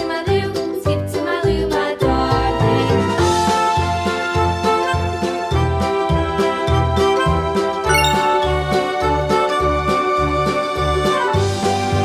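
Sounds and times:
bright tinkling chime: 7.9s - 8.7s.

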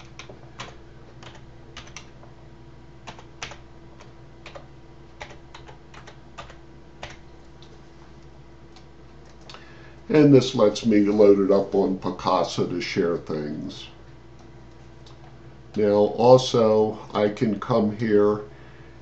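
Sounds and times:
computer keyboard typing: 0.0s - 2.2s, 3.0s - 7.3s
faint steady hum: 0.0s - 19.0s.

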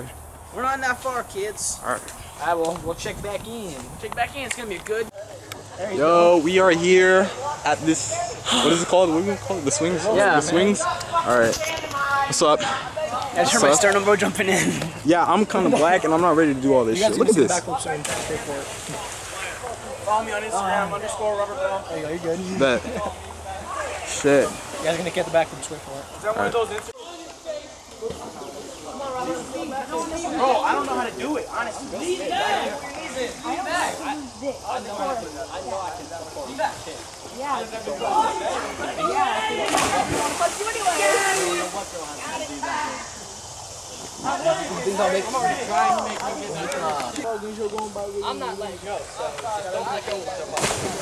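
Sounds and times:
faint voices talking: 0.0s - 51.0s
splash into river: 18.0s - 19.6s, 39.5s - 41.9s, 50.5s - 51.0s
people yelling: 37.5s - 43.2s.

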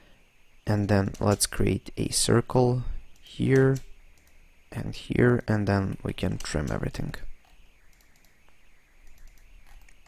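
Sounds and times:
low steady hiss: 0.0s - 10.0s
faint mouse clicks: 7.4s - 10.0s.

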